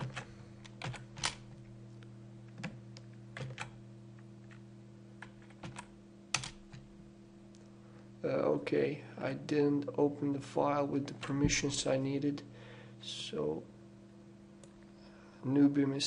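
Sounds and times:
computer keyboard keystrokes: 0.0s - 1.4s, 2.5s - 3.8s, 5.2s - 6.9s
steady low hum: 0.0s - 16.0s.

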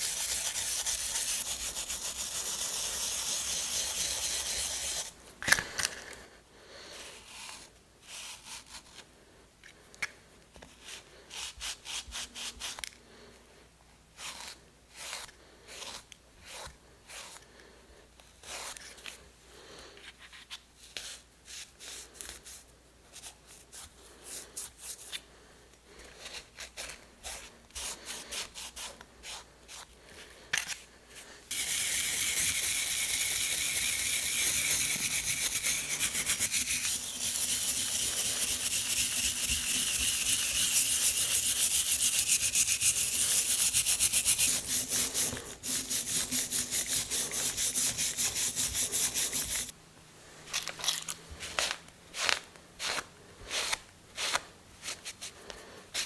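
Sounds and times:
brush scrubbing with low hum: 0.0s - 5.2s, 31.2s - 49.7s
rag rubbing metal: 31.6s - 49.7s.

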